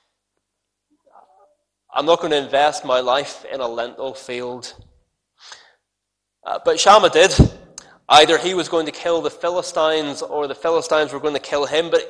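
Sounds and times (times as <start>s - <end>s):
man speaking: 2.0s - 4.9s, 6.4s - 12.0s.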